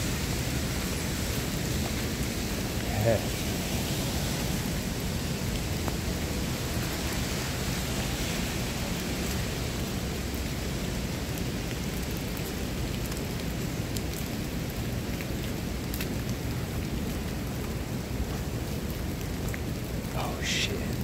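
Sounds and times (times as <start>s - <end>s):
light rain falling: 0.0s - 21.0s.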